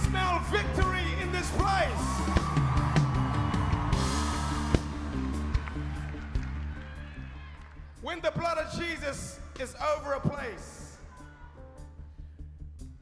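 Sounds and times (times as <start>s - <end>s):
live church band music: 0.0s - 6.8s, 8.0s - 11.0s.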